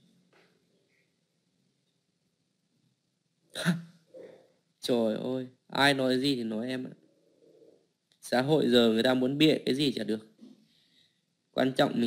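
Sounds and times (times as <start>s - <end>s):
man's short sharp vocal sound: 3.6s - 4.4s.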